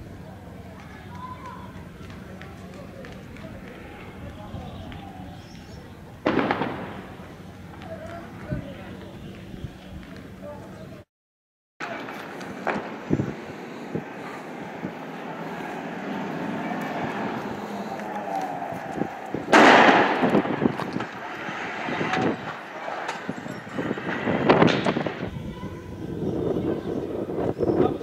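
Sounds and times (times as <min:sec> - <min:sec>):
street noise: 0:00.0 - 0:11.1, 0:11.8 - 0:28.0
gunfire bangs and blasts: 0:06.2 - 0:07.1, 0:19.5 - 0:20.7.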